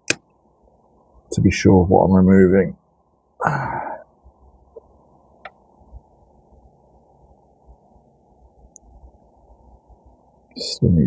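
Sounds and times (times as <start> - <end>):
person exhaling: 3.4 - 4.0.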